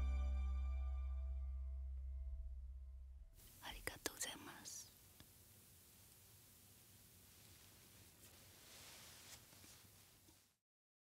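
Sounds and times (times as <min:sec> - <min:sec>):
low accompaniment note: 0:00.0 - 0:03.4
person whispering: 0:03.6 - 0:05.0.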